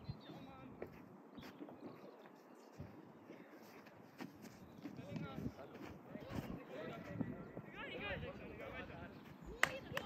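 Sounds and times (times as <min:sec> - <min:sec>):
faint open-air ambience: 0:00.0 - 0:10.0.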